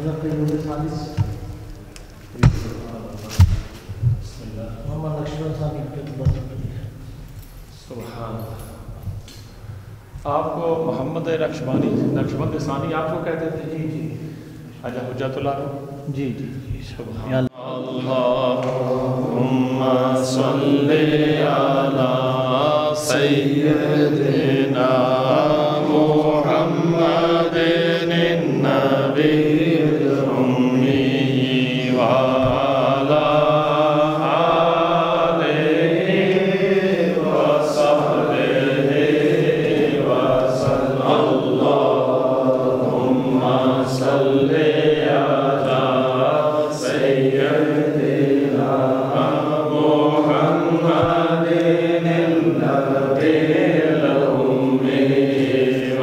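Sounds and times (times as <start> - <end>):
men chanting together: 17.3 - 56.0.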